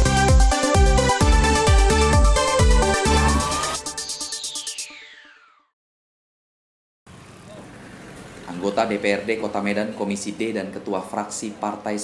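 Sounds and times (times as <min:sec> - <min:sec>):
roadside background noise: 0:07.1 - 0:12.0.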